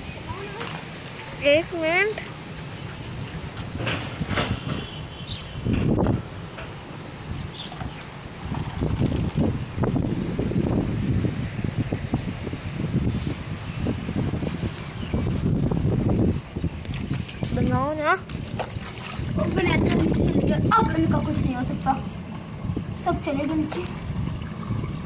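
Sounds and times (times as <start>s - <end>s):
steady rustling hiss: 0.0s - 16.9s
wind buffeting microphone: 0.0s - 25.0s.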